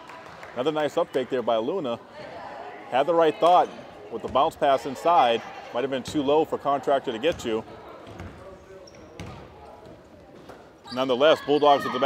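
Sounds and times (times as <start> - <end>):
basketball bouncing on wooden floor: 7.3 - 8.4, 9.2 - 10.0.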